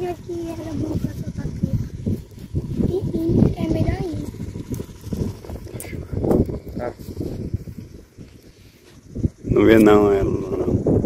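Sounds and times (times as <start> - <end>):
people talking: 0.0 - 2.0, 2.8 - 4.4, 9.5 - 10.8.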